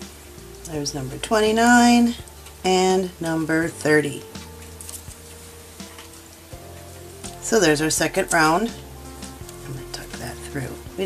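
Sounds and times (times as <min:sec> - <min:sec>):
faint background music: 0:00.0 - 0:11.0
yarn rustling: 0:00.0 - 0:11.0.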